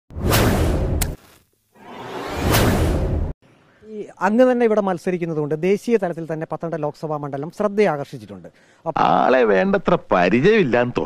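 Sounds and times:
whoosh sound effect: 0.2s - 1.2s, 1.8s - 3.3s
sharp crack: 0.2s - 1.4s.

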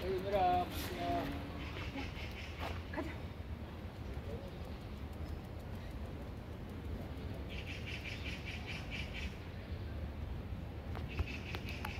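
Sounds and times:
bird chirping: 0.0s - 2.7s, 4.0s - 6.1s, 7.0s - 10.0s.

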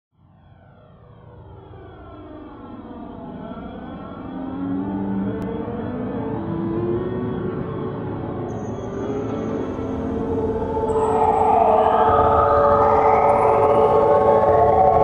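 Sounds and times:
sustained synth notes: 8.5s - 15.0s
sweeping tones falling in pitch: 8.9s - 15.0s
synthesized spacecraft-like rumble: 8.9s - 15.0s.

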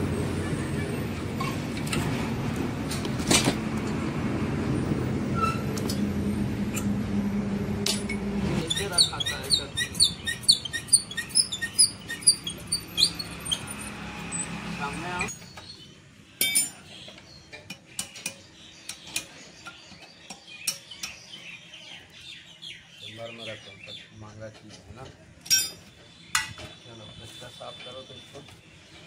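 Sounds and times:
small birds chirping: 8.6s - 29.0s
hand tools clinking on metal: 16.4s - 16.9s, 25.4s - 26.7s.

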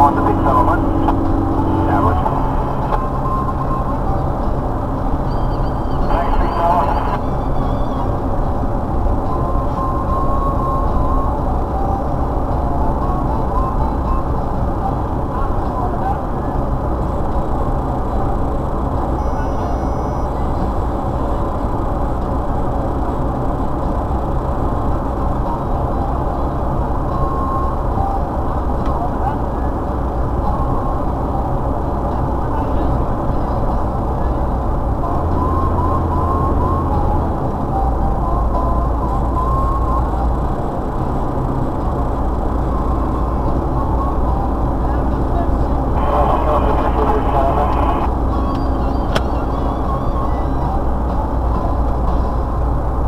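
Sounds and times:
car cabin road and engine noise: 0.0s - 53.0s.

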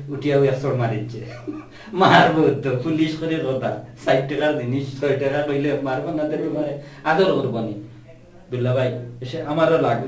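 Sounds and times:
men's conversation: 0.0s - 7.9s, 8.5s - 10.0s
man chuckling: 1.2s - 2.3s.

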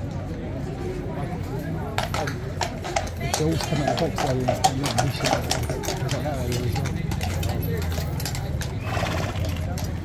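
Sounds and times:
people talking: 0.0s - 10.0s
hooves clicking on stone: 1.9s - 10.0s.

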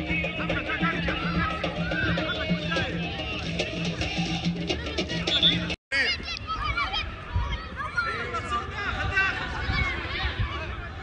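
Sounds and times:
background music: 0.0s - 5.8s
children shouting: 0.7s - 3.5s, 5.9s - 11.0s.

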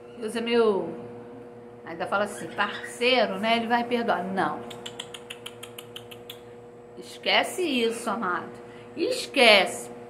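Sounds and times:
rapid tongue clicks: 4.7s - 6.5s.

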